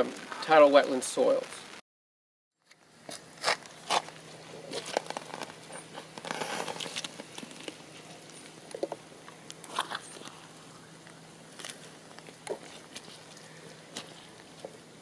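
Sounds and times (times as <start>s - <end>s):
crunching and rustling: 2.6s - 15.0s
faint steady hum: 2.6s - 15.0s.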